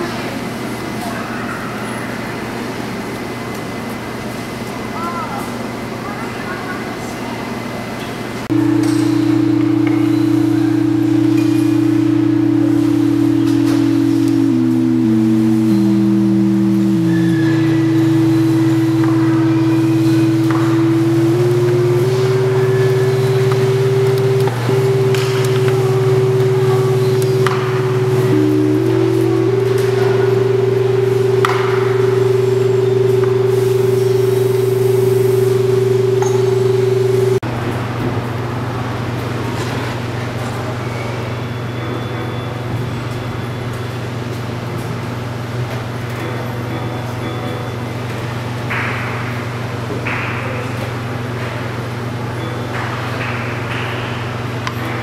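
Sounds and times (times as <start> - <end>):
steady low hum: 8.4 - 39.5
steady electronic tones: 8.5 - 37.4.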